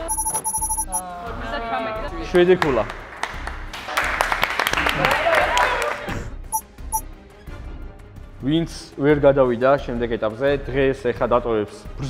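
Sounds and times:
short electronic pings: 0.0s - 1.0s
people clapping and cheering: 2.4s - 6.3s.

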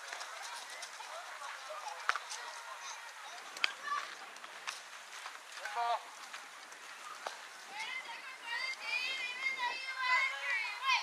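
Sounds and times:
children shouting: 0.0s - 4.4s, 7.1s - 11.0s
murmur of distant voices: 0.0s - 11.0s.

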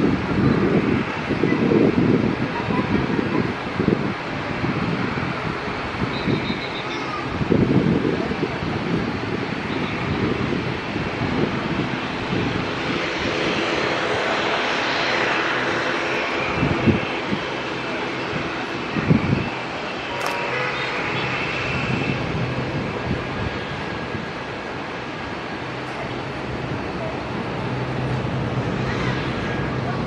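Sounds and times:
jet engines rushing: 0.0s - 30.0s.

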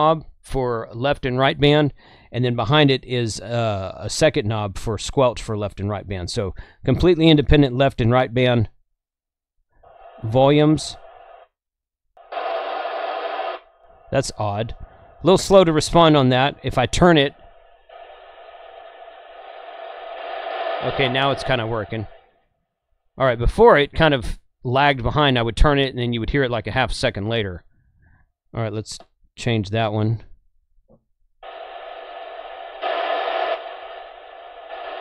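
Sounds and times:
radio static hiss: 9.9s - 11.5s, 12.2s - 22.4s, 31.4s - 35.0s.

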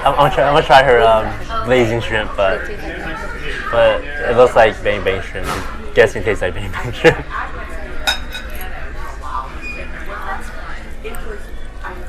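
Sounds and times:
cutlery clinking on tableware: 8.0s - 8.7s.

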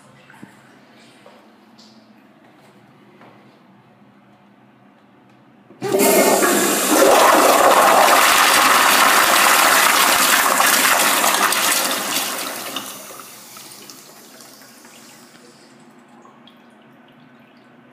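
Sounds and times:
toilet flushing: 5.8s - 17.6s.

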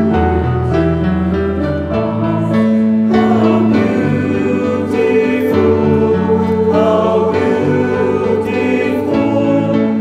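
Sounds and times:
choir singing: 0.0s - 10.0s
piano playing held chords: 0.0s - 10.0s.

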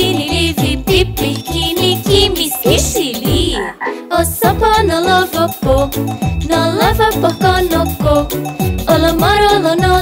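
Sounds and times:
children's song backing track: 0.0s - 10.0s
cartoon frog croaking: 1.6s - 4.0s.

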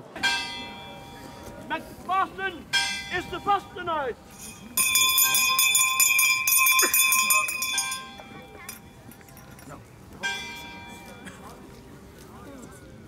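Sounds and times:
voices: 0.0s - 13.0s
bell ringing rapidly: 2.8s - 8.8s.

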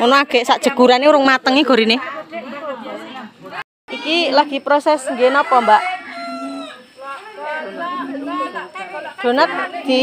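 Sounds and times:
voices: 0.0s - 10.0s
rooster crowing: 4.9s - 7.0s.

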